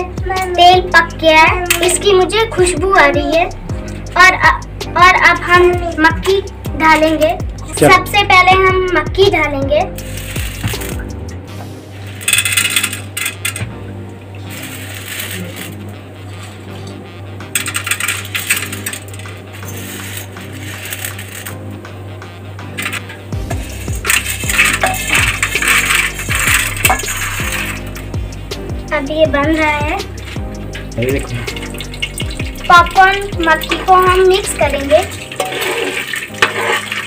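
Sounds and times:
popcorn kernels rattling in steel pan: 10.0 - 11.0, 12.0 - 13.6, 14.4 - 15.8, 17.5 - 21.7, 22.6 - 37.0.

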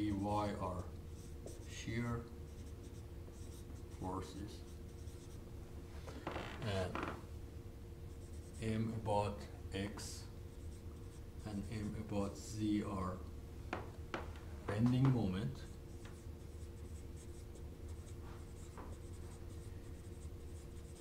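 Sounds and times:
marker writing on whiteboard: 0.1 - 1.8, 2.5 - 5.4, 8.1 - 8.7, 10.5 - 12.0, 14.7 - 21.0.

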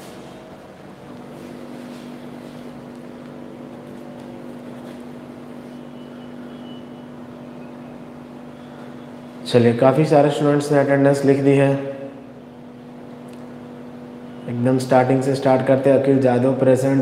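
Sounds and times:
mechanical hum: 0.0 - 17.0.

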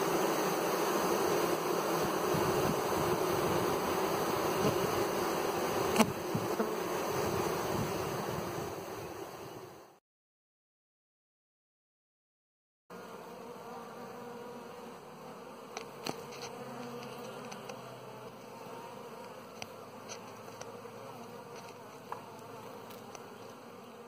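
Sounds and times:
bees buzzing: 0.0 - 10.0, 12.9 - 24.0.

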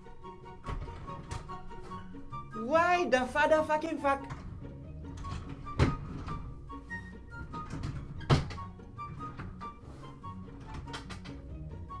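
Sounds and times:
background music melody: 0.0 - 12.0.

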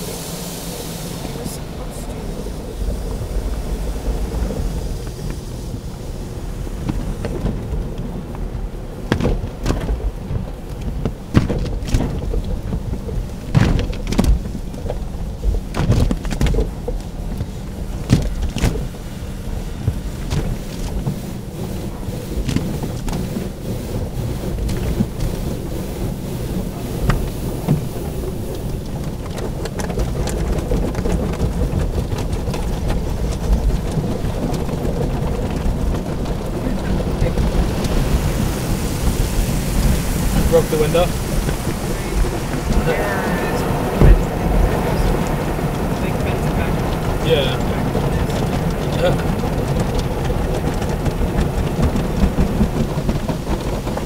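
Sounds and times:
water spray: 0.0 - 8.2, 9.2 - 52.0
low rumble: 0.0 - 54.0
wash brushes slapping on car: 0.0 - 54.0.

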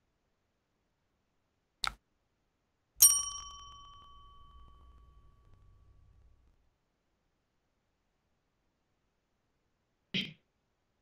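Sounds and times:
bell-like ding: 3.0 - 6.3.

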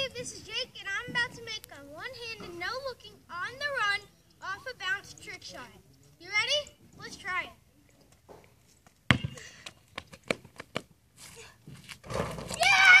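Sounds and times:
basketball bouncing on concrete: 9.1 - 10.9
child shouting: 12.5 - 13.0.

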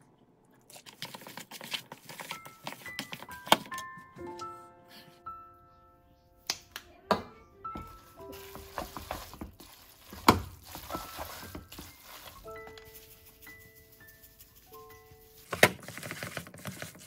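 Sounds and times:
soft background music: 1.8 - 17.0.

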